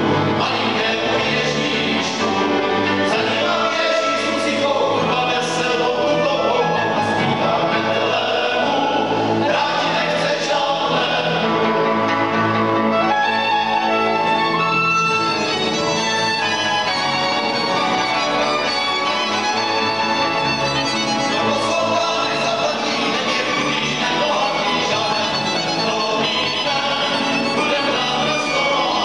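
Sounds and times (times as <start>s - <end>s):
cello: 0.0s - 29.0s
fiddles playing a carol: 0.0s - 29.0s.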